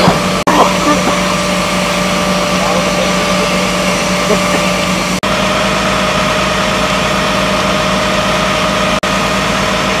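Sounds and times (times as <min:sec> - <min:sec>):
fire engine pump drone: 0:00.0 - 0:10.0.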